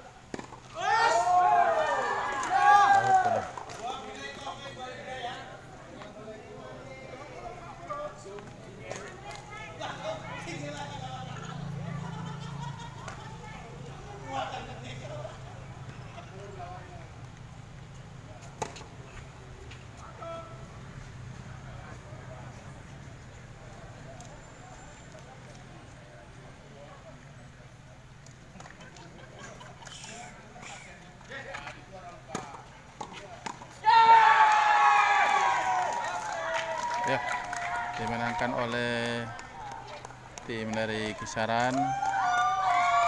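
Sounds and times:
crowd cheering: 0.0s - 4.6s, 33.8s - 43.0s.

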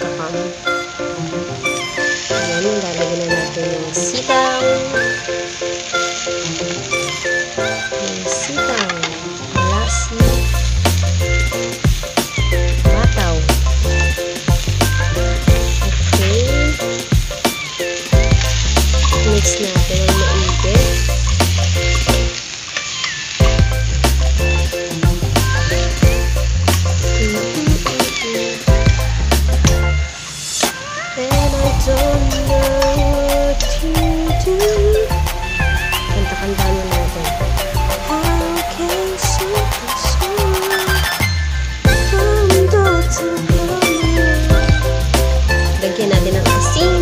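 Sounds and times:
food sizzling in a wok: 0.0s - 47.0s
background music with bass beat: 10.2s - 22.4s, 23.4s - 30.7s, 31.3s - 47.0s.

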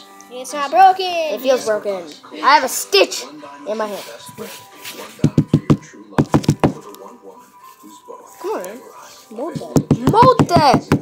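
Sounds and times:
sharp knocks on a tabletop: 5.2s - 6.8s, 9.6s - 11.0s.

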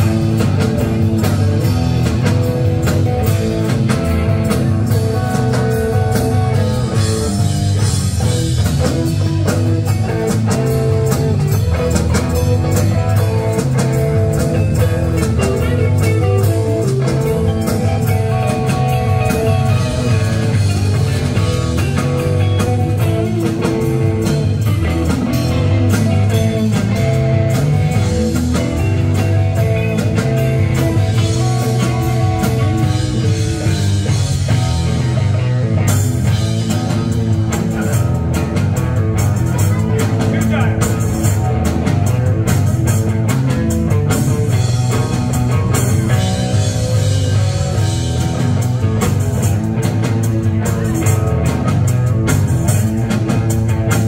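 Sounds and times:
bass guitar: 0.0s - 54.0s
drum kit: 0.0s - 54.0s
electric guitars: 0.0s - 54.0s.

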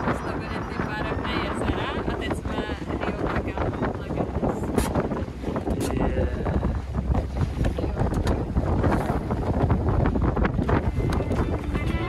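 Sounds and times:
water rushing past boat: 0.0s - 12.0s
wind buffeting microphone: 0.0s - 12.0s.

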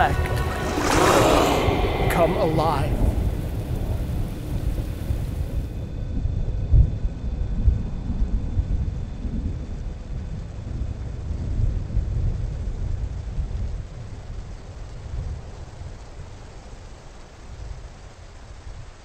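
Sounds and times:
faint high tones: 0.0s - 5.6s
deep uneven rumble: 0.0s - 6.2s.

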